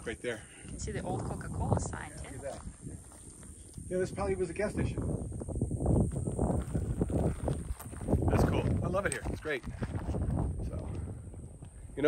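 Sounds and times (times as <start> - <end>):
footsteps through tall grass: 2.3 - 3.9, 6.0 - 10.6.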